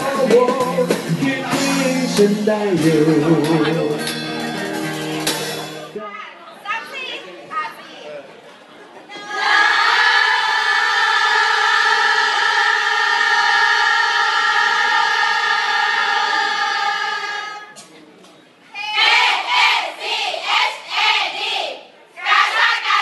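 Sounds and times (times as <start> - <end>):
group of voices chattering: 15.8 - 19.7.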